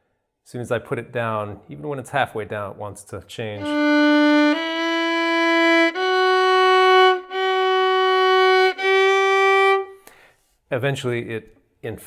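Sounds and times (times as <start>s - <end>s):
solo violin slow notes: 3.6s - 10.0s.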